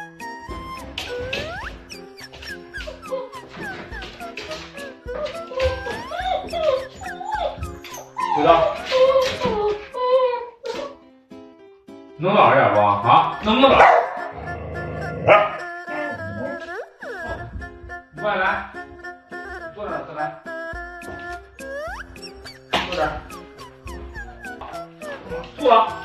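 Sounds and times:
dog whining: 0.0s - 11.0s, 13.0s - 26.0s
background music: 0.0s - 26.0s
dog barking: 13.6s - 14.3s, 15.1s - 15.6s.

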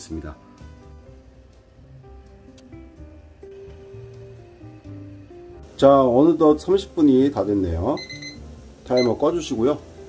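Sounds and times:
slow background music: 0.0s - 10.0s.

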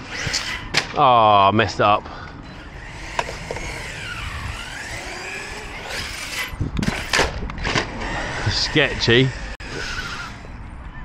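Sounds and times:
electric motor whining: 2.5s - 10.7s.

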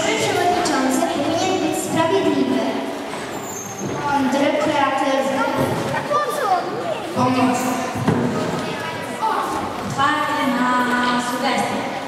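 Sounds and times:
children talking: 0.0s - 12.0s.

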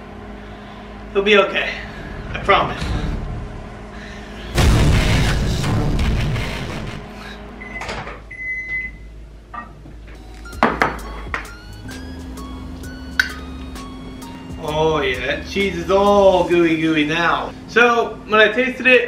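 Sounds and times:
microwave running hum: 0.0s - 19.0s
loud distorted burst: 1.9s - 7.5s
microwave oven beep: 7.6s - 14.7s.

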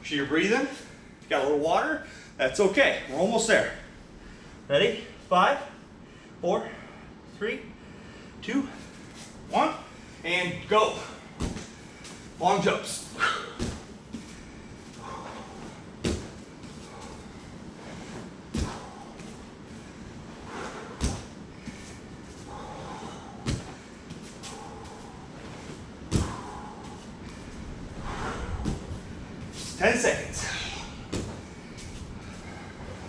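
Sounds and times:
bare feet thudding on foam mats: 11.0s - 12.2s, 13.2s - 29.9s, 30.9s - 33.0s.

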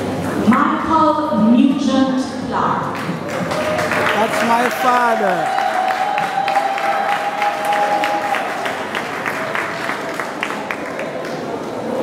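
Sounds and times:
audience applauding: 3.2s - 12.0s.

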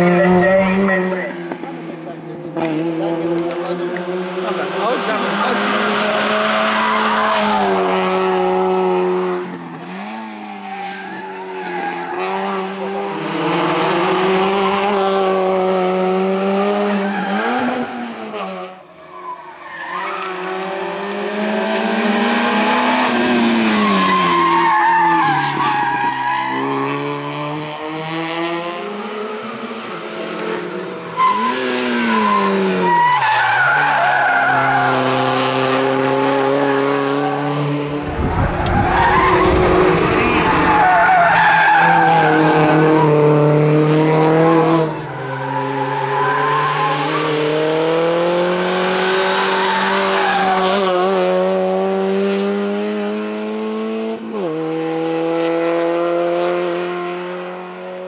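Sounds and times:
race car engines revving: 0.0s - 58.0s
car passing with low rumble: 37.5s - 40.8s
tyres squealing: 38.7s - 42.4s.

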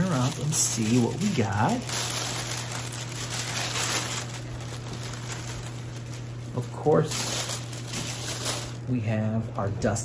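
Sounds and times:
tissue paper rustling: 0.0s - 8.9s.

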